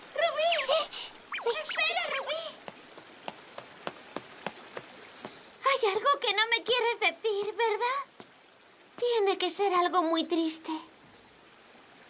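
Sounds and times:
faint hiss: 0:00.0 - 0:12.0.

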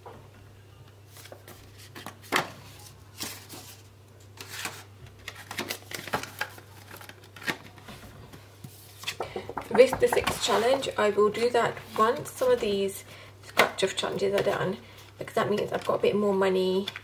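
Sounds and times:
plastic envelope and banknotes rustling: 0:01.1 - 0:08.1.

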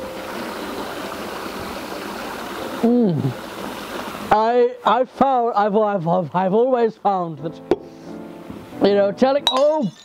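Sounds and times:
water running in a pond: 0:00.0 - 0:06.2.

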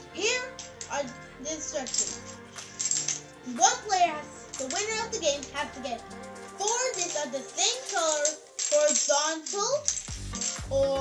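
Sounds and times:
music: 0:00.0 - 0:11.0
children's voices: 0:03.5 - 0:09.9
plastic counters clicking: 0:04.6 - 0:05.8, 0:06.6 - 0:11.0.

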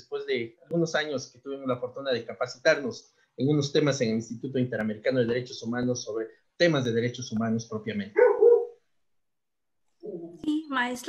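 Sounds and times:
dog barking: 0:08.2 - 0:08.8.

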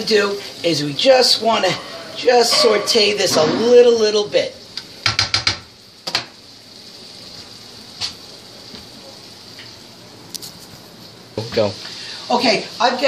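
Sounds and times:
faint steady sizzle: 0:00.0 - 0:13.0
spatula scraping frying pan: 0:01.6 - 0:03.8.

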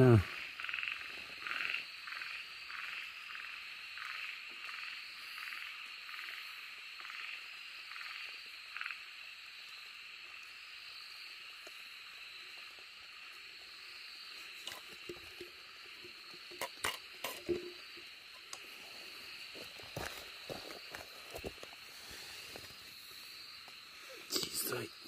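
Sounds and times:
high insect drone: 0:00.0 - 0:25.0.

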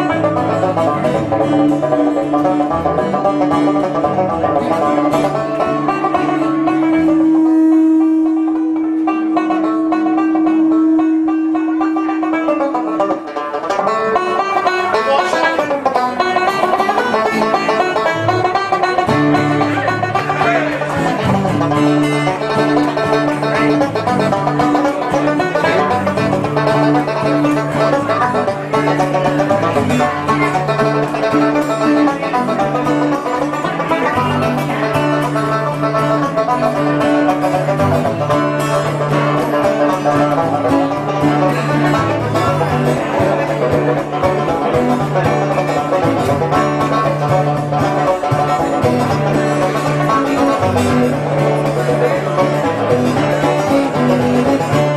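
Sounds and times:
banjo picking lead: 0:00.0 - 0:54.9
bass line: 0:00.0 - 0:54.9
strummed acoustic guitar: 0:00.0 - 0:54.9.

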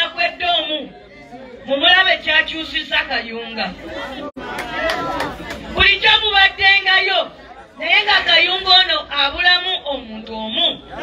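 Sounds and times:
woman speaking loudly: 0:00.0 - 0:00.9, 0:01.7 - 0:03.8, 0:05.8 - 0:10.8.

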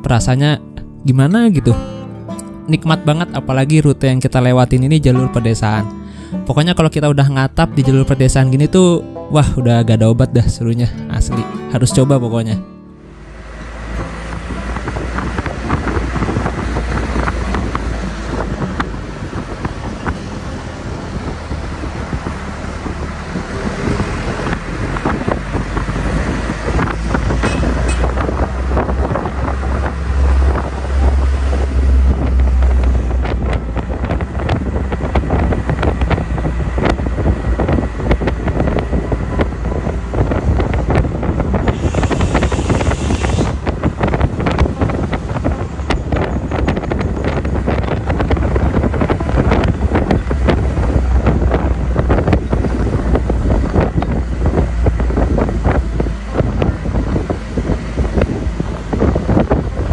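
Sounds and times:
minibus rumble: 0:00.0 - 0:59.9
tyres on road: 0:11.4 - 0:59.9
wind buffeting microphone: 0:13.1 - 0:59.9.

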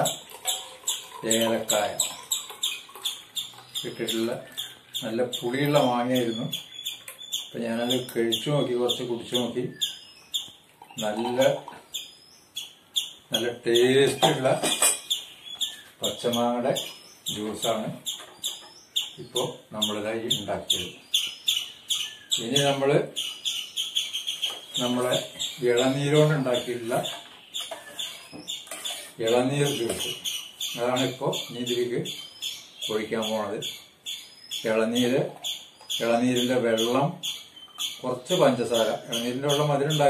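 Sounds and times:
small bird chirping: 0:00.0 - 0:40.0
juice pouring into glass: 0:00.2 - 0:03.0
man speaking: 0:01.2 - 0:02.1, 0:03.8 - 0:06.6, 0:07.6 - 0:09.8, 0:11.0 - 0:11.7, 0:13.3 - 0:14.7, 0:16.0 - 0:18.0, 0:19.2 - 0:21.0, 0:22.4 - 0:23.2, 0:24.8 - 0:27.2, 0:29.2 - 0:30.2, 0:30.8 - 0:32.1, 0:32.9 - 0:33.7, 0:34.6 - 0:35.4, 0:36.0 - 0:37.2, 0:38.0 - 0:40.0.

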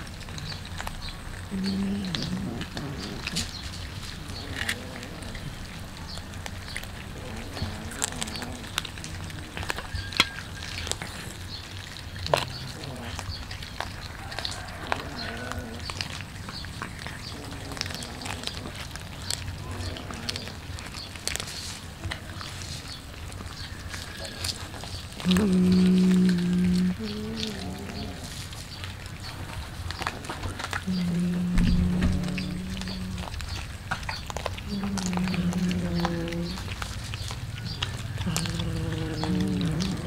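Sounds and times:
cats chewing and crunching fish: 0:00.0 - 0:40.0.

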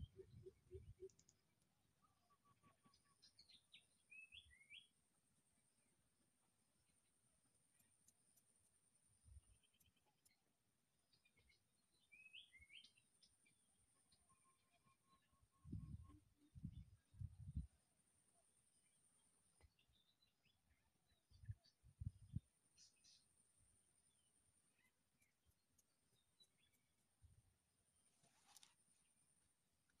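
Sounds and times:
faint bird chirps: 0:00.0 - 0:05.0, 0:09.2 - 0:17.7, 0:18.3 - 0:23.4.

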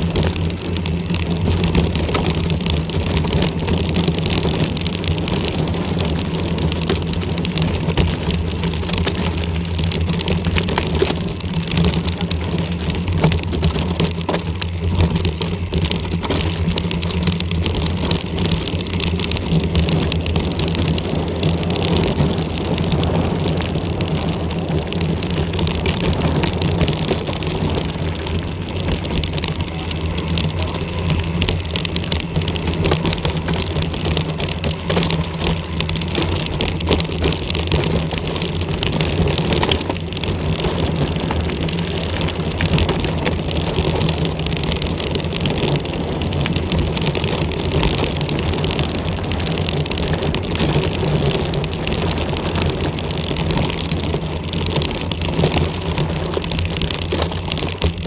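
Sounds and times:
bike rattles and knocks: 0:00.0 - 0:58.0
bike tyres rolling over gravel: 0:00.0 - 0:58.0
wind on microphone: 0:00.0 - 0:58.0.

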